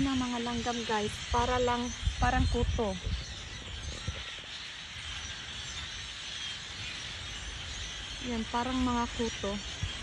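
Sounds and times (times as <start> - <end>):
flock of songbirds chattering: 0.0 - 10.0.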